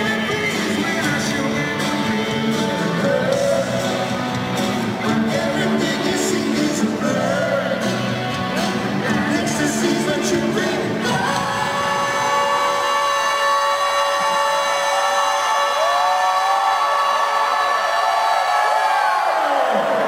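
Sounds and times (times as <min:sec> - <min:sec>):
rock band playing: 0:00.0 - 0:15.0
crowd cheering and whooping: 0:11.1 - 0:20.0.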